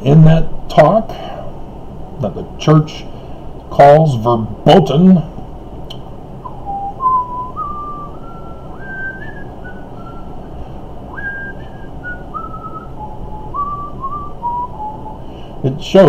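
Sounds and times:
man whistling a slow tune: 6.4s - 15.4s.

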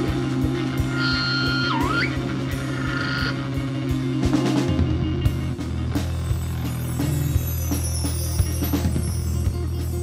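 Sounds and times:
drum kit: 0.0s - 10.0s
electric bass: 0.0s - 10.0s.

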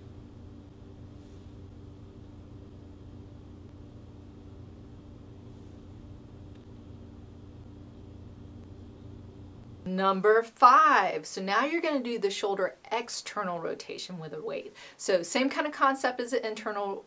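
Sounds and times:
faint low hum: 0.0s - 15.7s.

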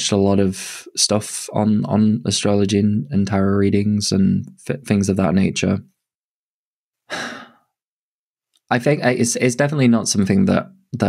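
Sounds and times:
man breathing into microphone: 7.1s - 7.7s.

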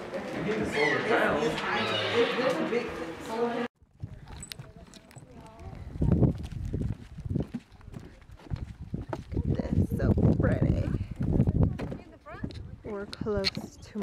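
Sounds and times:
wind gusting on microphone: 3.8s - 14.0s
footsteps on wooden boardwalk: 3.9s - 14.0s.

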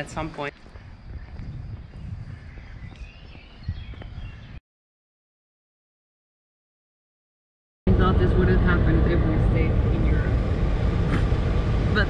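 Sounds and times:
vehicle engine rumble from inside cab: 7.9s - 12.0s.

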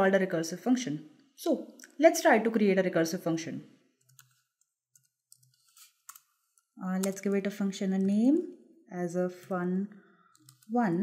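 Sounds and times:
keyboard keys clicking: 7.0s - 8.2s.

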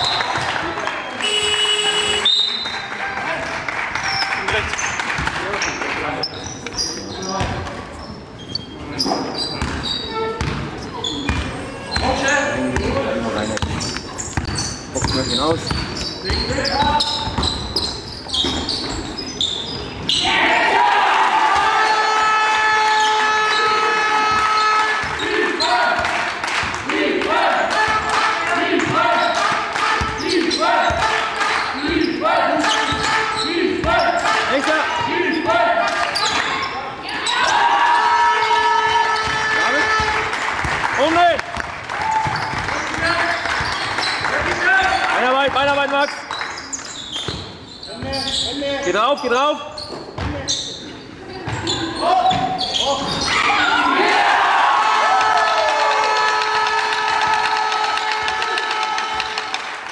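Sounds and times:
basketball bouncing on court: 7.4s - 7.8s, 9.6s - 20.2s, 38.8s - 40.8s, 41.5s - 44.6s, 47.2s - 48.2s, 49.8s - 50.5s
loud voices calling: 26.9s - 40.4s.

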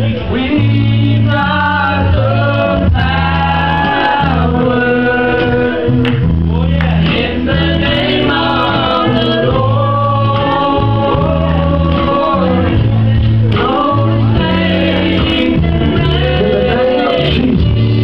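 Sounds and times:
group singing gospel with band: 0.0s - 18.0s
loud bass notes: 0.0s - 18.0s.

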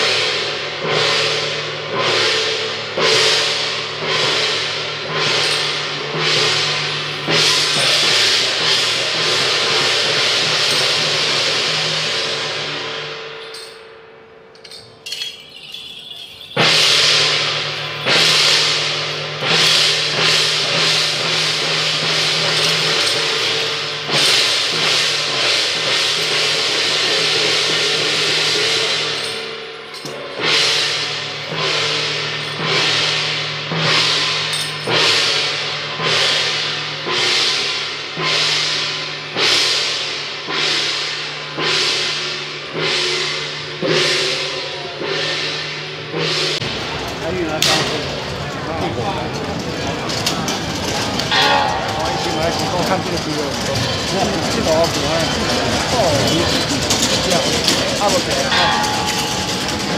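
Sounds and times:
hand cymbals and gongs crashing: 0.0s - 59.9s.

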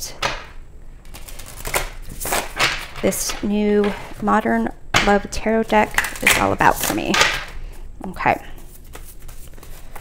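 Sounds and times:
cards being shuffled: 8.6s - 10.0s.

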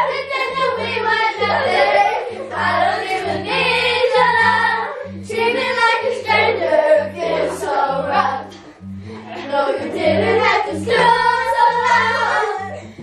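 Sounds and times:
children singing together: 0.0s - 13.0s
low note pattern: 0.0s - 13.0s.

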